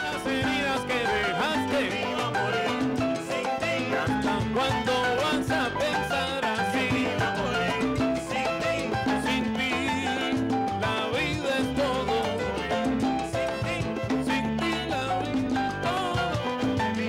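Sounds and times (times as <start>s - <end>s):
congas: 0.0s - 17.0s
upright bass: 0.0s - 17.0s.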